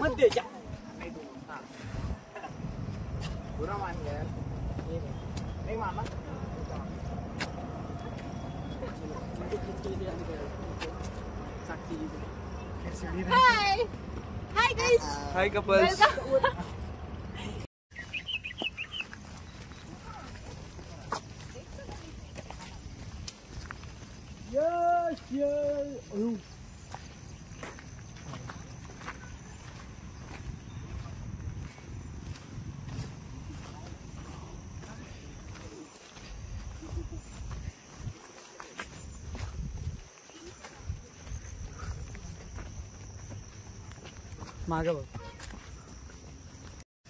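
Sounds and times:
footsteps crunching on gravel: 0.0s - 12.7s, 18.0s - 46.8s
wind noise on microphone: 1.8s - 3.2s, 39.1s - 40.1s
wind rumble on microphone: 1.8s - 8.4s, 39.1s - 40.1s.

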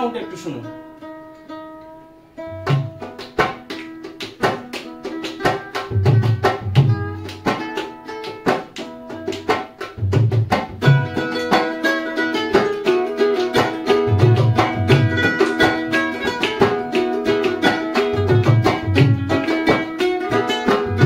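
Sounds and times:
ukulele strumming: 0.0s - 21.0s.

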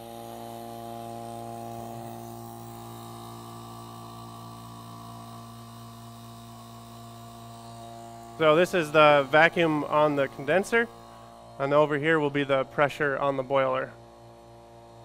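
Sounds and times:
vacuum pump humming: 0.0s - 15.0s.

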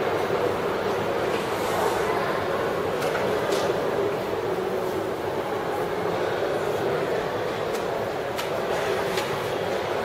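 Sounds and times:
shopping mall ambience hum: 0.0s - 10.0s.

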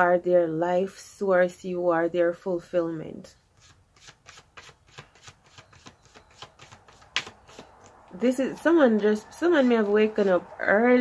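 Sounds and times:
cards shuffling soft clicks: 3.6s - 8.2s
card snap: 6.4s - 8.0s.

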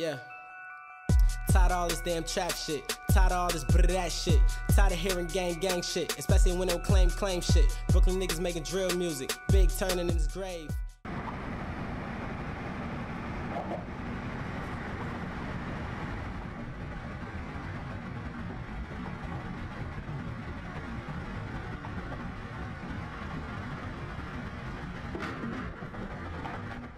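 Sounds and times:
car engine and road noise: 11.0s - 26.9s.

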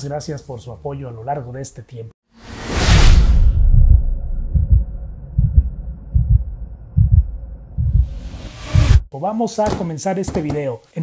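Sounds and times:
heartbeat-like bass thumps: 3.2s - 9.1s.

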